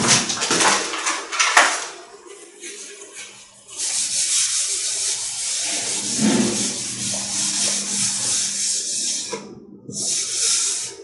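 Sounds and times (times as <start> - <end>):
eraser rubbing on whiteboard: 2.6 - 11.0.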